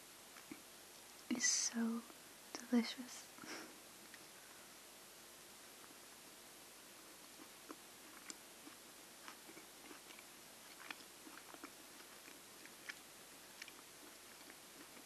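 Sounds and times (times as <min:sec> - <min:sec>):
person chewing with mouth clicks: 0:07.2 - 0:15.0.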